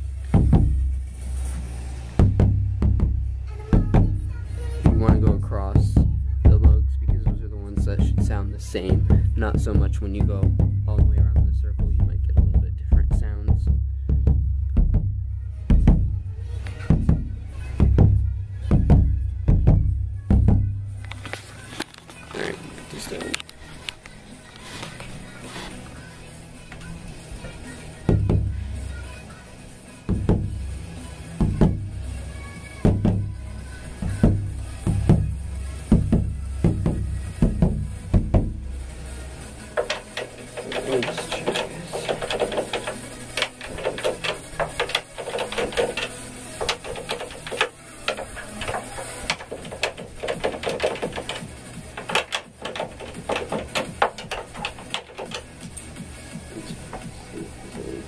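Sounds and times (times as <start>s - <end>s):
bass drum thuds: 0.0s - 1.4s, 2.1s - 21.0s, 28.1s - 28.9s, 30.1s - 57.9s
light sharp knocks and clicks: 39.8s - 55.9s.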